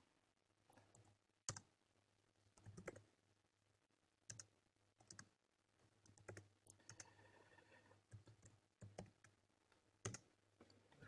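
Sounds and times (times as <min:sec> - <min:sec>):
computer keyboard keystrokes: 0:02.6 - 0:03.0, 0:06.1 - 0:07.1, 0:08.1 - 0:09.3, 0:10.0 - 0:10.2.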